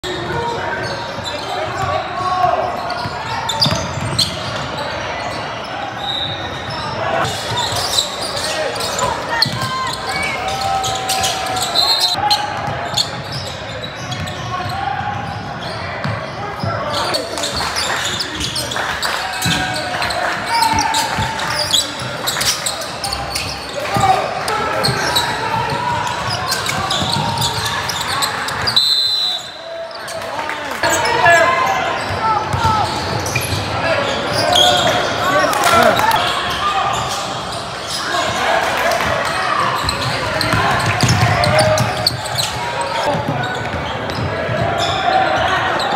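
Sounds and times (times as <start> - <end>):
many voices echoing: 0.0 - 45.9.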